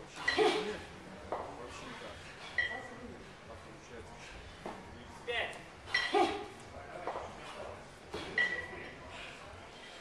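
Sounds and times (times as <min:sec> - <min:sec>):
indistinct voices in gym hall: 0:00.0 - 0:10.0.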